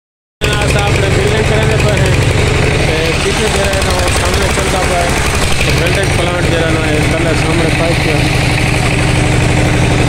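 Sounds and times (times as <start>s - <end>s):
diesel engine running: 0.4s - 10.0s.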